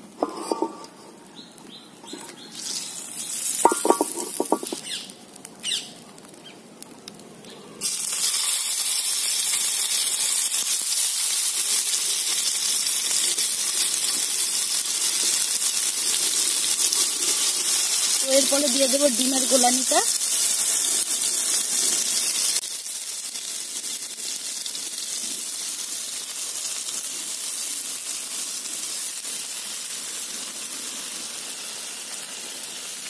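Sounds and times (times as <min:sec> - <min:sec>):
food sizzling in hot oil: 0:00.0 - 0:06.6, 0:07.8 - 0:33.0
oil heating faintly: 0:00.0 - 0:33.0.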